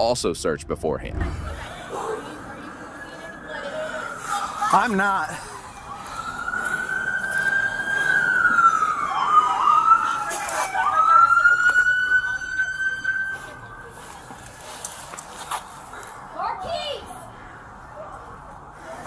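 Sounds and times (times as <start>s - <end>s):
police siren wailing: 1.5s - 14.7s.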